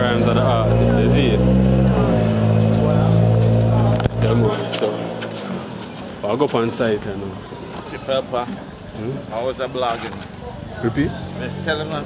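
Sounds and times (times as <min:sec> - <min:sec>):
general background noise: 0:00.0 - 0:12.0.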